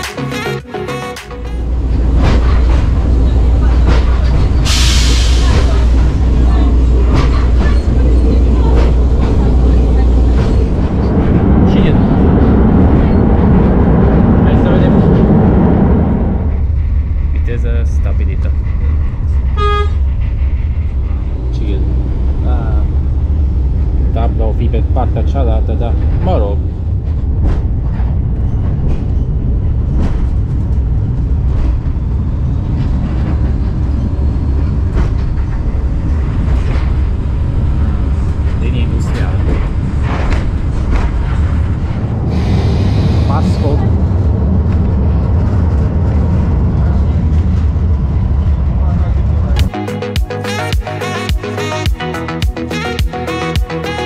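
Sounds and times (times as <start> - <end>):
railcar drone and rattle: 0.0 - 49.8
railcar horn toot: 19.5 - 20.0, 49.7 - 54.0.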